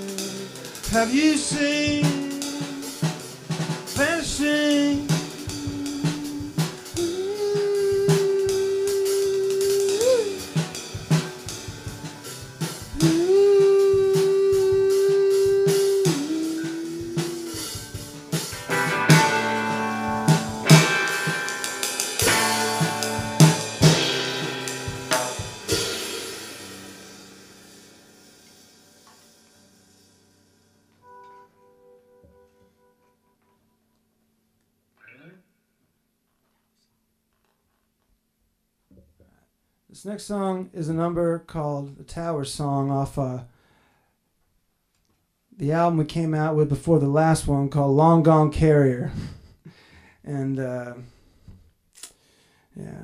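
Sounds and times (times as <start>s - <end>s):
live rock band playing: 0.0s - 29.4s
drum-kit hits and cymbals: 0.0s - 30.2s.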